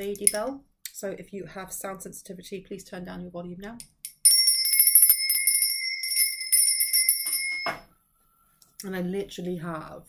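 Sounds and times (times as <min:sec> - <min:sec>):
hand bell ringing: 0:04.1 - 0:07.8.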